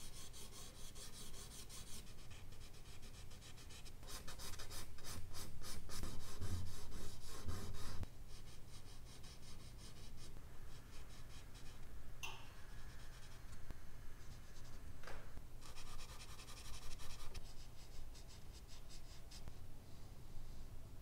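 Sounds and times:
pencil scratching on paper: 0.1s - 11.8s, 15.6s - 19.4s.

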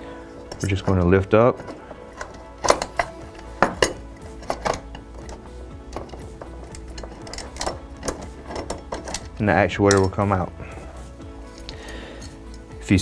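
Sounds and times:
metal faceplate clicking and knocking: 0.5s - 10.3s.

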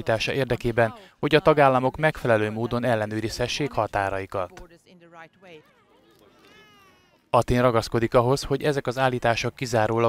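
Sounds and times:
faint voices: 0.0s - 7.8s
faint high-pitched cry: 5.5s - 7.4s.

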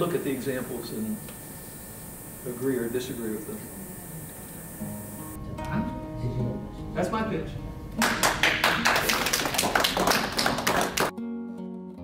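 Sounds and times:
people applauding: 8.0s - 11.1s.

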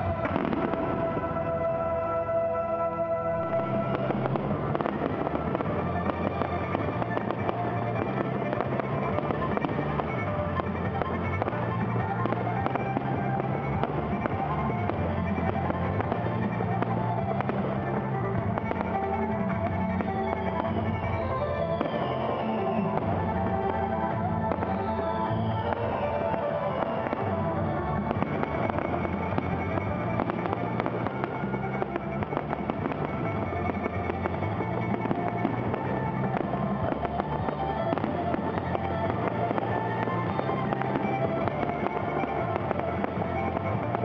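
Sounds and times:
fireworks crackling and bangs: 0.0s - 44.0s
fireworks whistles falling in pitch: 0.0s - 44.0s
music playing: 0.0s - 44.0s.

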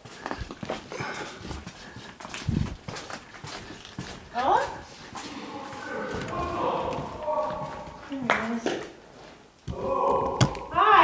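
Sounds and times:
indistinct wordless voice: 5.1s - 8.3s.

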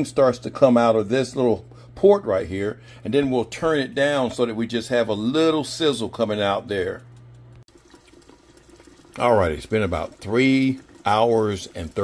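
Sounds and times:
liquid simmering in a pot: 5.8s - 12.0s.

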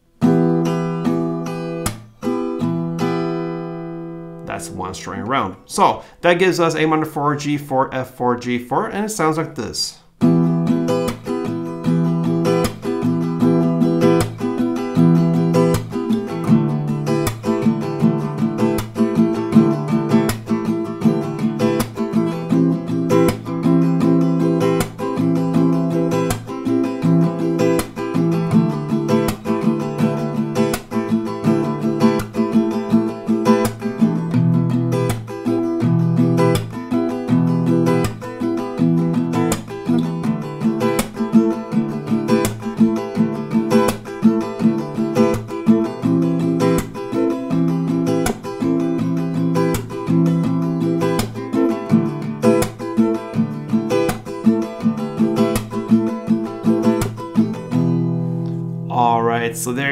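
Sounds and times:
acoustic guitar strumming: 0.0s - 59.9s
percussive clap on guitar strings: 1.8s - 2.1s, 36.4s - 36.8s, 40.8s - 41.4s, 48.1s - 48.7s, 53.9s - 54.6s.

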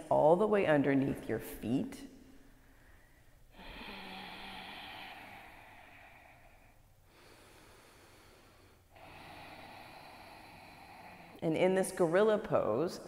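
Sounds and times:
person breathing deeply: 2.5s - 11.5s.

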